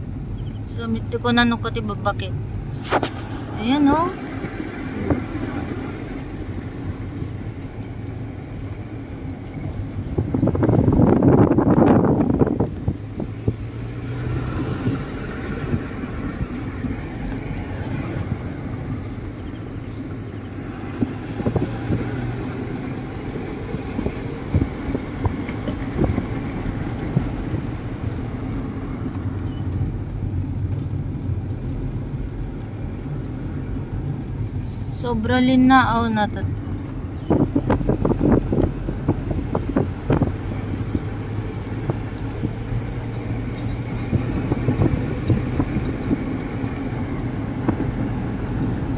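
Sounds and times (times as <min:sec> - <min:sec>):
car road noise from inside cabin: 0:00.0 - 0:48.9.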